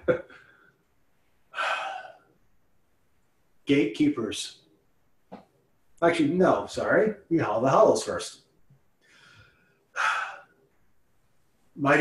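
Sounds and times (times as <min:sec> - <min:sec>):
man breathing: 0:00.2 - 0:02.3, 0:09.0 - 0:10.6.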